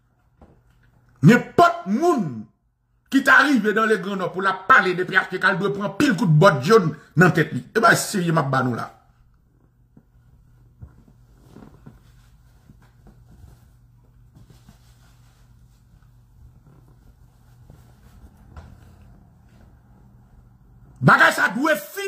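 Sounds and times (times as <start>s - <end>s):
low steady hum: 8.4s - 21.1s
towel rubbing over face: 10.3s - 20.6s.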